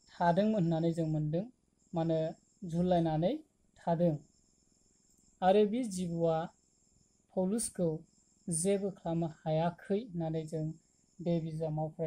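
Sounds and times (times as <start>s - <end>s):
crickets trilling: 0.0s - 12.0s.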